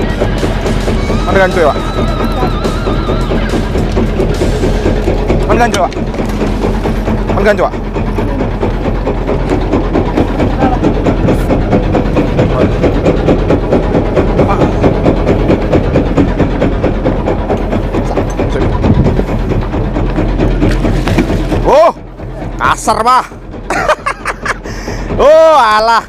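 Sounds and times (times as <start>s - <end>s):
boat engine running: 0.0s - 26.0s.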